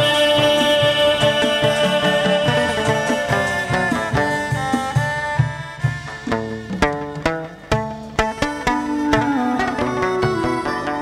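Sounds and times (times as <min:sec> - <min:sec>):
plucked moon lute: 0:00.0 - 0:11.0
steady drum beats: 0:00.0 - 0:11.0.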